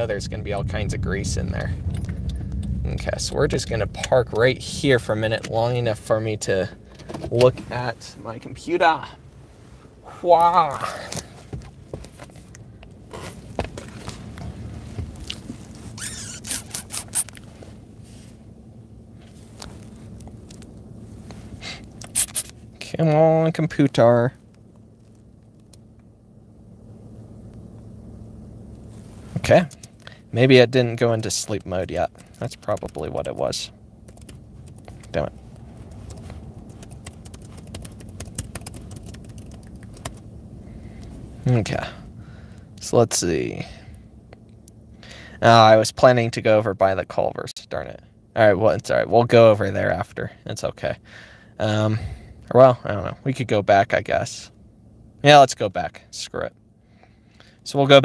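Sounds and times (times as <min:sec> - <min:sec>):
car low hum: 0:00.0 - 0:58.0
sharp clicks: 0:34.1 - 0:35.2, 0:36.0 - 0:40.2.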